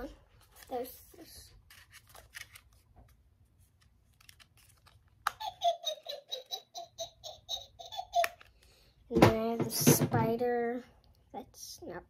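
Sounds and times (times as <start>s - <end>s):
toy witch cackling: 5.3s - 8.5s.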